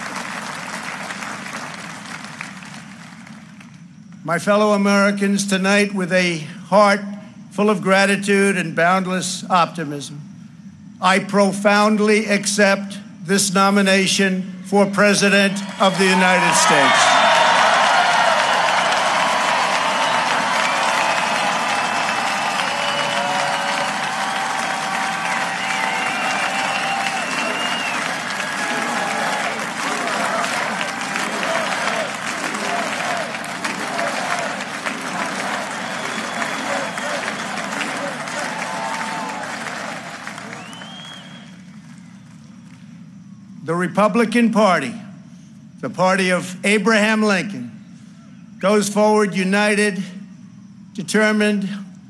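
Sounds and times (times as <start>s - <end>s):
crowd applauding and cheering: 0.0s - 3.8s, 15.6s - 42.8s
shouts and whoops: 15.6s - 41.2s.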